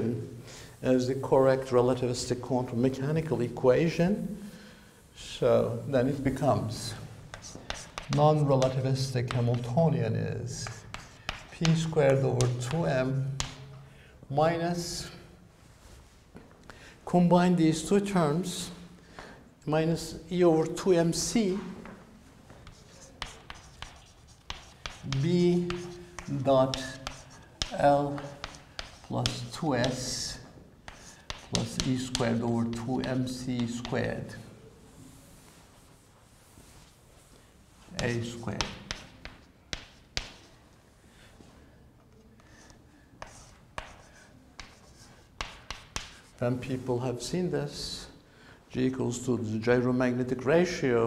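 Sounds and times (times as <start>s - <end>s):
chalk writing on blackboard: 6.1s - 13.8s, 22.5s - 34.2s, 38.0s - 40.6s, 42.4s - 46.8s
chalk tapping: 6.7s - 13.8s, 21.8s - 34.2s, 38.0s - 40.6s, 42.4s - 46.7s.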